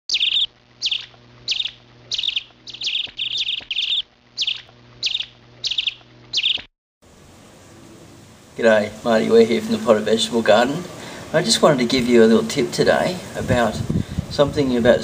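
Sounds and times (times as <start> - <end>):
bird chirping: 0.1 - 6.7.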